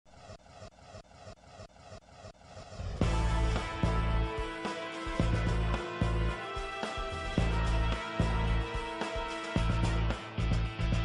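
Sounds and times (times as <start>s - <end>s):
news intro music with pulsing beat: 0.1s - 10.9s
loud musical hit: 3.0s - 9.0s.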